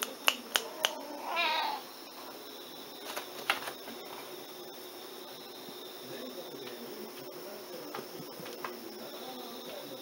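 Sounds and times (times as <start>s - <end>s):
cat meowing: 0.9s - 1.8s.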